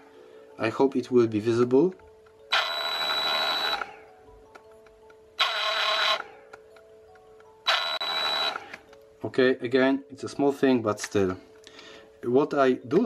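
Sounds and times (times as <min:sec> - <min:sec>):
power saw whining: 0:02.5 - 0:04.0, 0:05.4 - 0:06.4, 0:07.7 - 0:08.9.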